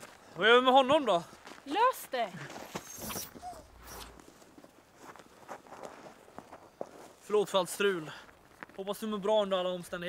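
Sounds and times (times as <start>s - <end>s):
faint footsteps in snow: 0.0s - 9.7s.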